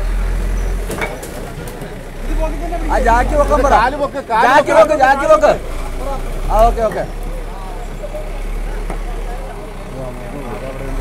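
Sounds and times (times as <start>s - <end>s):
heavy machinery engine hum: 0.0s - 11.0s
voices talking: 0.0s - 11.0s.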